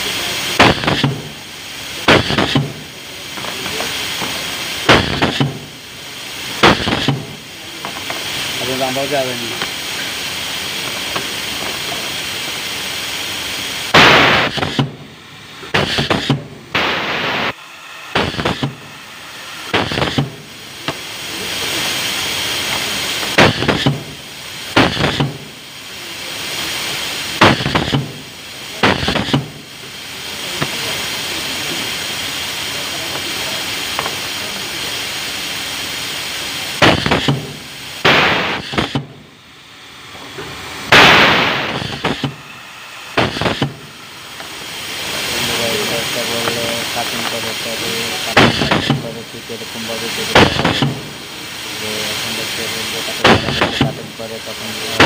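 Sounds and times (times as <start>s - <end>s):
air cylinders clacking and venting: 0.0s - 55.0s
steady air hiss: 0.0s - 55.0s.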